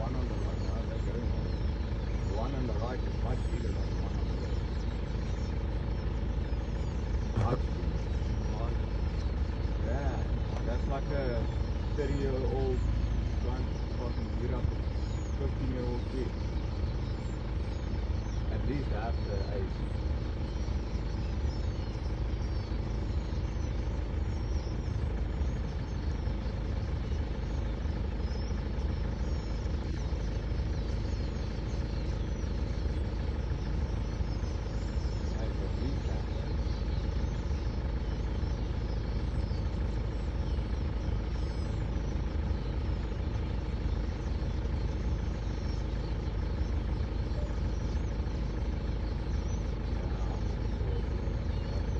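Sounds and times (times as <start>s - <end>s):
vehicle engine idling: 0.0s - 51.9s.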